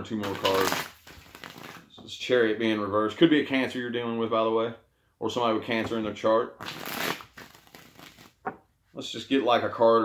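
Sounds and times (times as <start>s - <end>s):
cards riffle shuffling: 0.2s - 1.9s, 6.6s - 8.6s.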